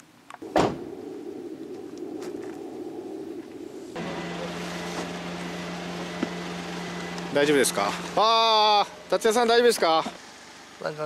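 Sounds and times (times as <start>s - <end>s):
mechanical hum with hiss: 4.0s - 11.0s.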